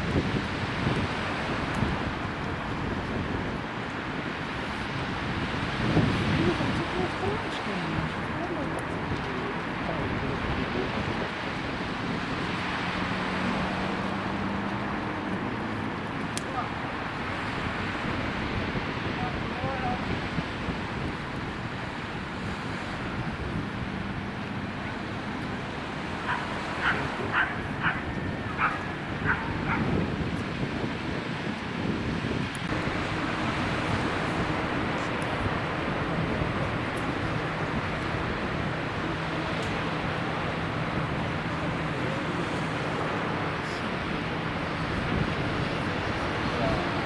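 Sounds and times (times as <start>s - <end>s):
distant surf: 0.0s - 47.0s
low engine hum: 0.0s - 47.0s
town noise: 0.0s - 47.0s
wind: 0.0s - 47.0s
dog barking: 26.2s - 29.9s.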